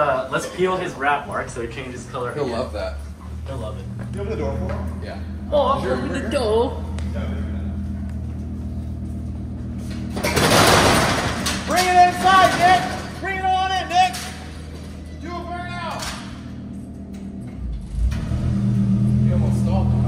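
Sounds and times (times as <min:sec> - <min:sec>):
car engine idling: 0:00.0 - 0:20.0
roll-up door rattling open: 0:10.0 - 0:15.1.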